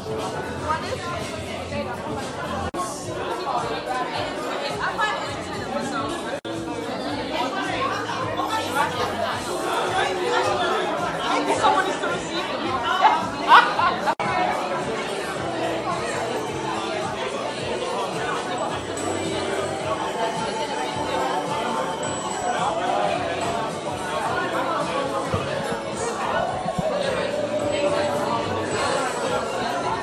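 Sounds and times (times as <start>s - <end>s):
faint music: 0.0s - 30.0s
people chattering: 0.0s - 30.0s.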